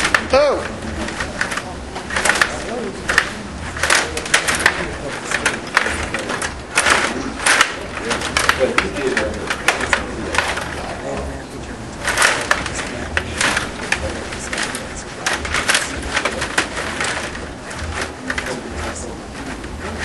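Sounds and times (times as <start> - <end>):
table hockey plastic clacks: 0.0 - 11.3.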